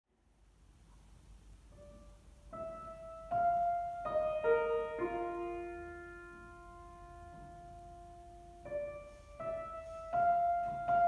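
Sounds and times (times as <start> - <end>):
soft piano chord: 0.2 - 11.0.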